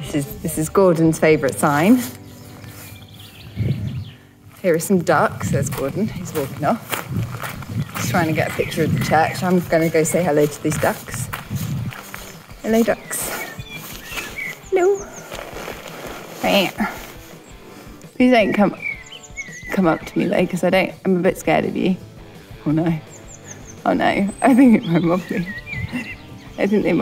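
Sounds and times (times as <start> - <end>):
small birds chirping: 0.0 - 27.0
faint bird chirps: 2.2 - 4.3, 11.6 - 15.4, 18.4 - 20.4, 23.1 - 27.0.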